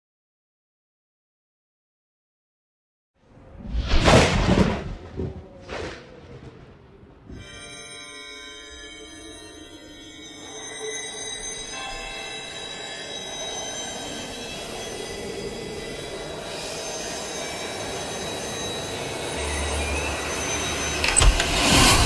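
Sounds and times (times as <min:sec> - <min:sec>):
steady high tones: 0:07.3 - 0:22.0
metallic screeching drone: 0:08.4 - 0:22.0.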